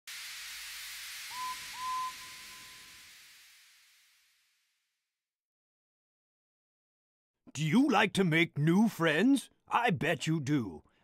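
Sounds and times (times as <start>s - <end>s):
steady steam hiss: 0.1s - 4.6s
train whistle toots: 1.3s - 2.9s.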